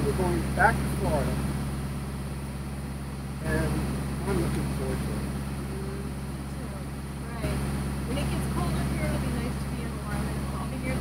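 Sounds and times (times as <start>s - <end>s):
boat engine humming: 0.0s - 11.0s.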